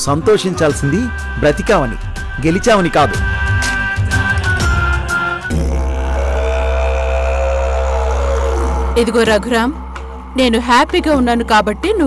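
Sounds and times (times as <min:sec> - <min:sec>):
deep steady drone: 0:01.0 - 0:12.0.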